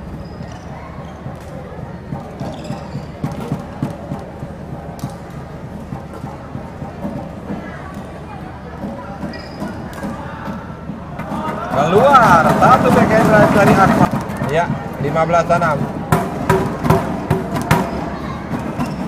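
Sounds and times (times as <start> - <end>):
shoes squeaking on court: 0.0 - 3.7, 9.2 - 10.2
murmur of crowd: 0.0 - 19.0.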